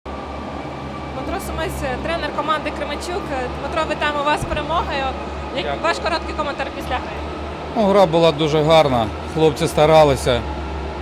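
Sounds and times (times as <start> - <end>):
low background hum: 0.1 - 11.0.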